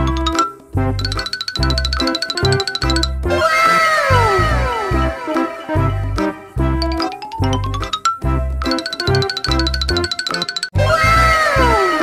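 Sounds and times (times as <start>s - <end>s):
bouncy background music: 0.0s - 12.0s.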